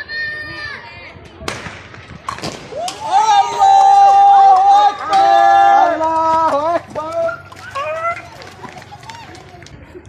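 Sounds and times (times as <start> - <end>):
people shouting: 2.7 - 8.3.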